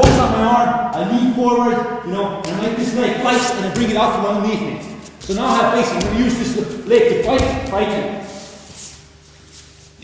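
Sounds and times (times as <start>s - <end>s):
bodies rustling on a mat: 8.2s - 10.0s.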